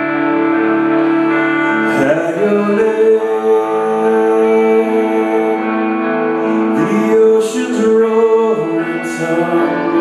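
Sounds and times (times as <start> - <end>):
electric guitar sustained notes: 0.0 - 10.0
keyboard sustained chord: 0.0 - 10.0.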